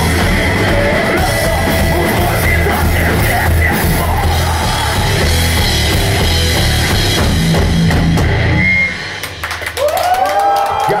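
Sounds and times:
live heavy rock band: 0.0 - 10.9.

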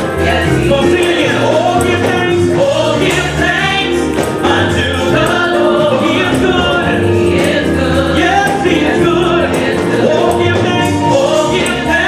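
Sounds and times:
gospel group singing: 0.0 - 12.0.

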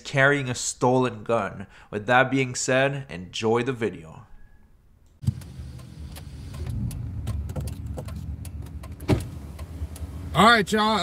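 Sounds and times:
sharp clicks and knocks: 5.2 - 10.1
low rumble inside car cabin: 5.2 - 11.0.

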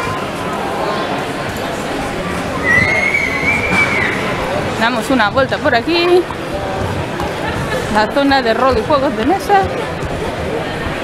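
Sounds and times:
hubbub of crowd in hall: 0.0 - 11.0
robot electronic whistle: 2.6 - 4.2.

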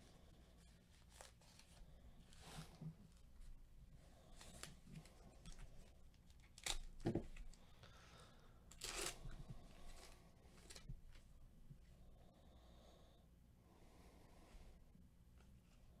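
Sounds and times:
foil wrapper tearing and rustling: 6.3 - 7.0, 8.7 - 9.4.

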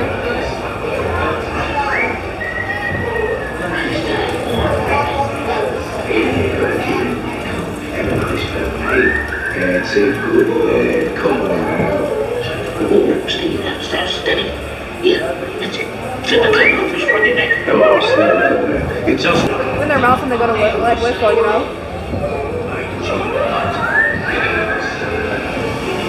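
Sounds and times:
recorded voices calling out: 0.0 - 26.0.

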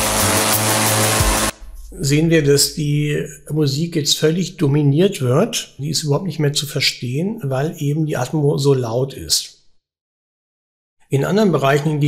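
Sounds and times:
inflator fan running: 0.0 - 2.6
music track: 0.0 - 3.6.

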